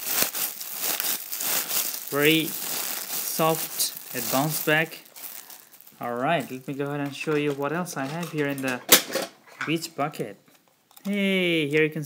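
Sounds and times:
plastic wrapping crinkling: 0:00.0 - 0:08.9.

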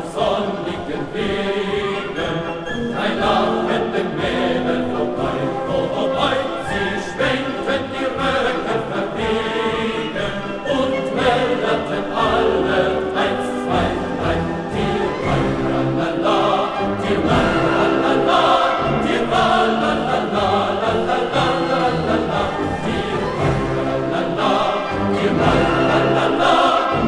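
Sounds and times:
choir singing: 0:00.0 - 0:27.0
instrumental accompaniment: 0:00.0 - 0:27.0.

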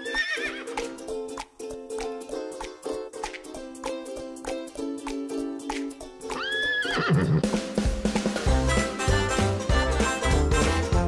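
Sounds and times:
horse whinny: 0:06.4 - 0:07.6
upbeat music with bass line: 0:07.4 - 0:11.0.

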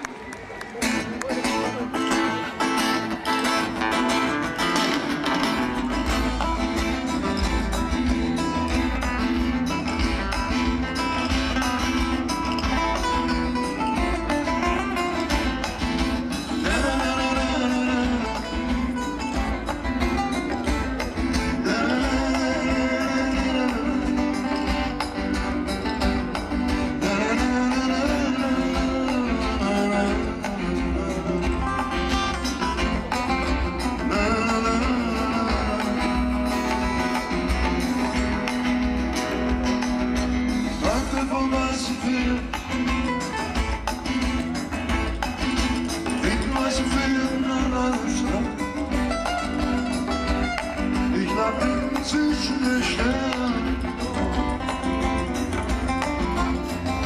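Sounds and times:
bass: 0:00.0 - 0:57.0
drums: 0:00.0 - 0:57.0
strummed acoustic guitars: 0:00.0 - 0:57.0
man singing: 0:16.2 - 0:25.7, 0:26.3 - 0:38.1, 0:40.5 - 0:43.7, 0:45.4 - 0:57.0.

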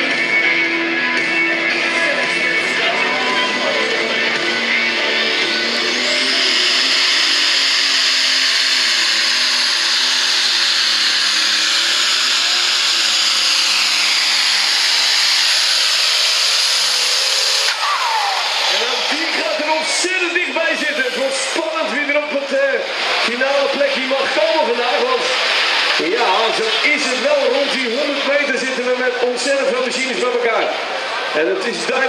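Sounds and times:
diesel engine at full throttle: 0:00.0 - 0:32.0.

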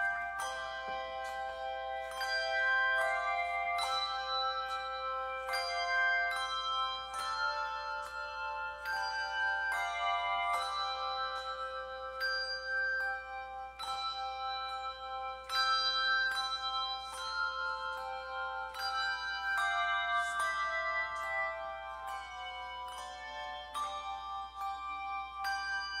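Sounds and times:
handbell choir playing a hymn: 0:00.0 - 0:26.0.

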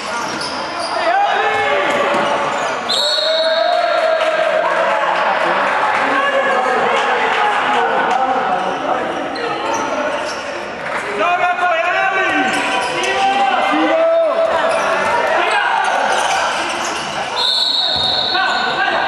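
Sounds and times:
players' voices: 0:00.0 - 0:19.0
referee's whistle blast: 0:02.9 - 0:03.6, 0:17.4 - 0:18.8.

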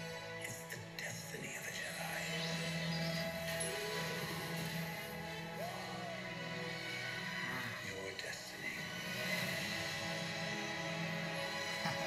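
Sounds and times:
movie trailer music from television: 0:00.0 - 0:12.0
voice over music: 0:00.0 - 0:12.0.

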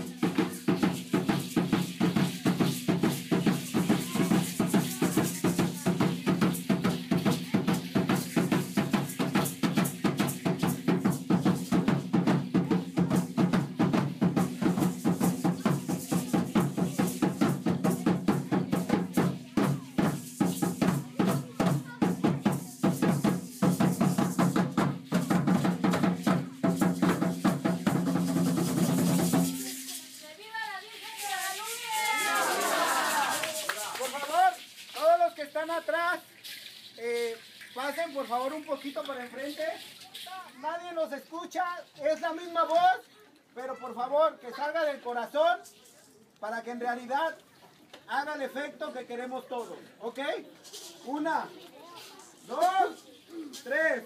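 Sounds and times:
drum beaten in fast rhythm: 0:00.0 - 0:35.2
ankle rattles shaking: 0:00.0 - 0:40.6.

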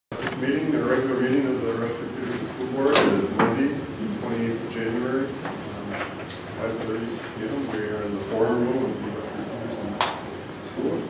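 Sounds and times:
people speaking: 0:00.2 - 0:11.0.

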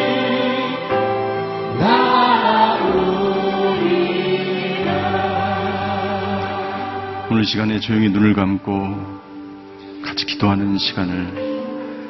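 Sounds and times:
vocal ensemble singing: 0:00.0 - 0:08.4
string orchestra: 0:00.0 - 0:12.0.

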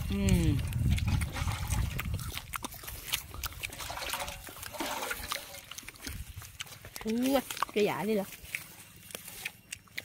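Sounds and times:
low microphone rumble: 0:00.0 - 0:06.6
chewing and mouth smacking: 0:00.0 - 0:10.0.

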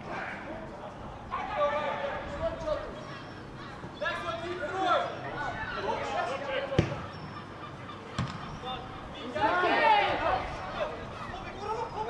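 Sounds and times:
players shouting: 0:00.0 - 0:12.0
football being kicked: 0:06.8 - 0:07.0.

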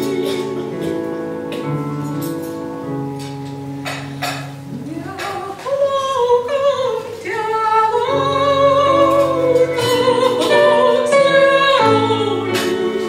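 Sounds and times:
soprano singing with vibrato: 0:00.0 - 0:01.5, 0:04.8 - 0:13.0
electronic keyboard chords: 0:00.0 - 0:05.2.

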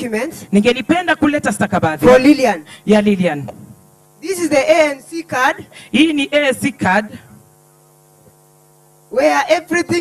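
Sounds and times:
person speaking: 0:00.0 - 0:03.6, 0:04.2 - 0:07.3
electrical mains hum: 0:00.0 - 0:10.0.

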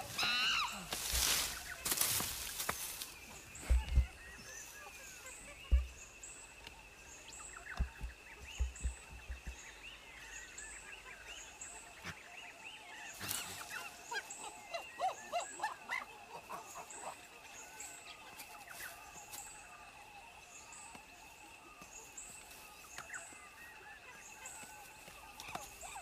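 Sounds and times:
bird calls: 0:00.0 - 0:26.0
dull low thumps: 0:03.4 - 0:04.4, 0:05.6 - 0:06.2, 0:07.6 - 0:09.8.

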